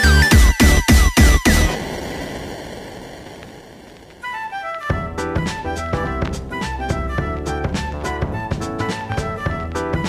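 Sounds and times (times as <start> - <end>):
hissing wash of music: 1.4 - 4.8.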